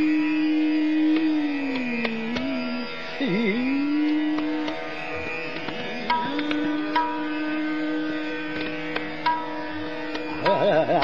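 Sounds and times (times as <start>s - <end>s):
harmonium: 0.0s - 11.0s
long held sung note: 0.0s - 11.0s
tabla strokes: 0.0s - 11.0s
tanpura drone: 0.0s - 11.0s.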